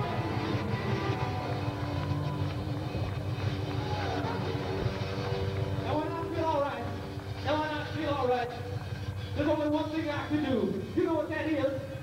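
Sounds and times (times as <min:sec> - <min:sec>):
live band playing dance song: 0:00.0 - 0:08.6.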